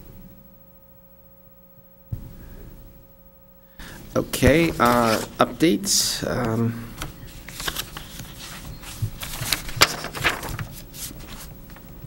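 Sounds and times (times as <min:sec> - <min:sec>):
paper rustling: 0:03.8 - 0:12.0.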